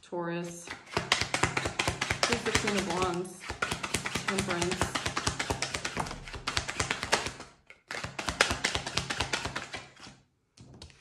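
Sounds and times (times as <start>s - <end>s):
cards clicking and flicking: 0.7s - 9.9s.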